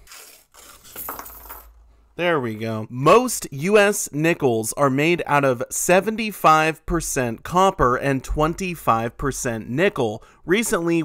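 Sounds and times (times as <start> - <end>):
paper coin roll tearing: 0.0 - 1.2
coins clinking onto table: 0.6 - 1.8.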